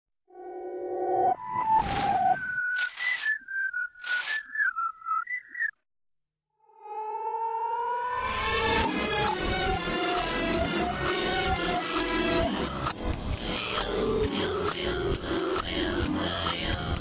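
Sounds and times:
whistled tune: 0:01.3 - 0:05.8
music: 0:08.1 - 0:17.0.

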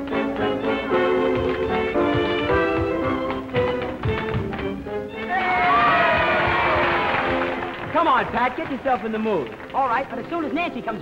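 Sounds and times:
tap dancing on wooden floor: 0:00.0 - 0:05.0
lively dance band music: 0:00.0 - 0:11.0.

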